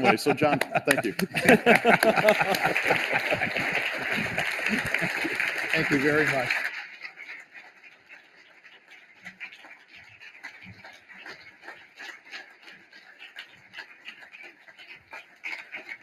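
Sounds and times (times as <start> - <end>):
audience applauding: 0.0 - 6.9.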